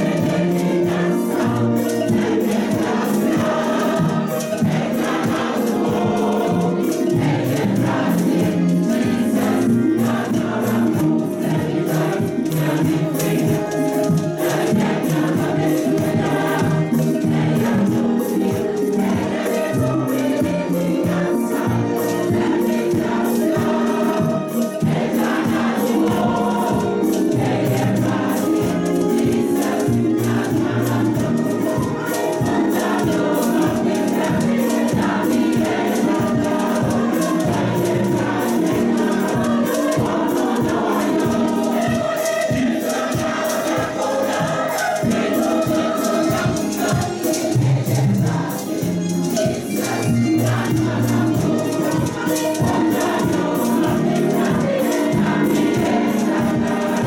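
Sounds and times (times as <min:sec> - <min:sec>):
church choir singing gospel: 0:00.0 - 0:57.0
steady drum beat: 0:00.0 - 0:57.0.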